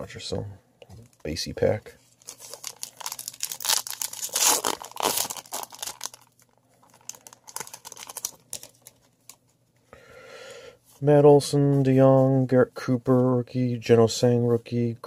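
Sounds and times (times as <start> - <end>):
foil wrapper tearing and crinkling: 2.2 - 9.1.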